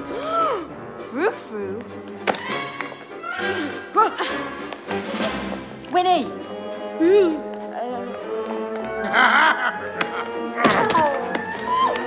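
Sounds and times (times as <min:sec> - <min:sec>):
orchestral music: 0:00.0 - 0:12.0.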